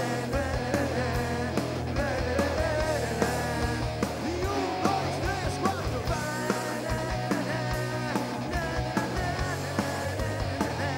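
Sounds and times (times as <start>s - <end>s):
drum kit beat: 0.0s - 10.9s
live rock band playing: 0.0s - 10.9s.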